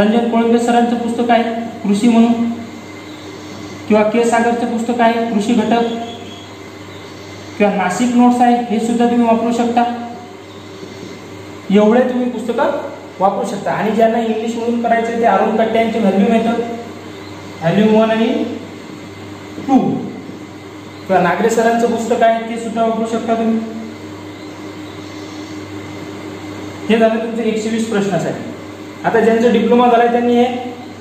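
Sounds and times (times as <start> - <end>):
man lecturing: 0.0 - 2.6, 7.6 - 10.2, 11.7 - 16.9, 17.6 - 18.6, 21.1 - 23.8, 26.9 - 30.8
low hiss and hum of room: 0.0 - 31.0.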